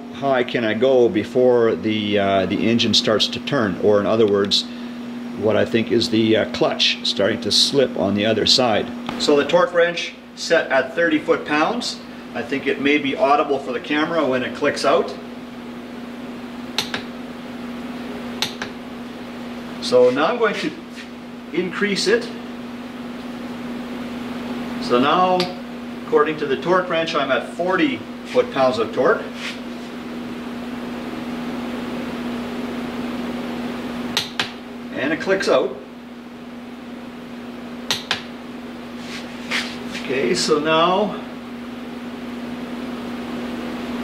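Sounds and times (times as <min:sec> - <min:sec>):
steady low hum: 0:00.0 - 0:44.0.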